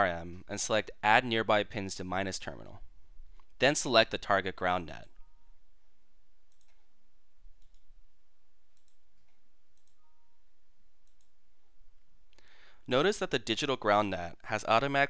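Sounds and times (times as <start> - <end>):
computer mouse clicks: 6.5 - 6.9, 7.6 - 7.9, 8.7 - 10.0, 11.0 - 11.4.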